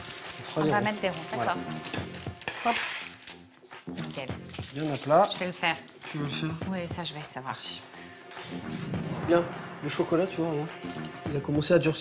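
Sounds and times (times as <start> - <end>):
rustling scrape of tray: 0.0 - 3.4.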